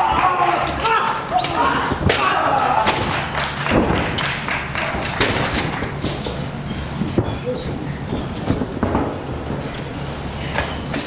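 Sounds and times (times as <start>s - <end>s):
voices shouting: 0.0s - 3.1s.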